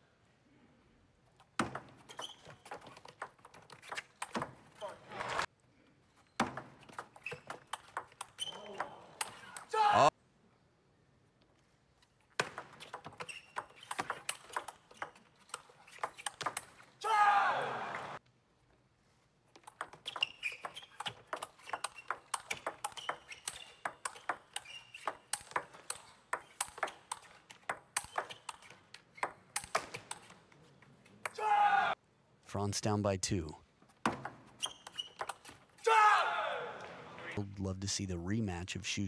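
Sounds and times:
person shouting: 9.7 - 10.1, 17.0 - 17.9, 31.4 - 32.0, 35.9 - 36.8
table tennis ball clicking: 19.6 - 30.4.

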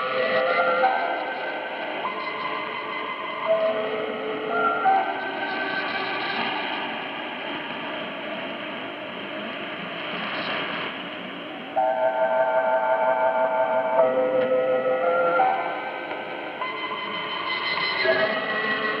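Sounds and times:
radio static hiss: 0.0 - 11.9
music over radio: 0.0 - 12.0, 13.4 - 19.0.

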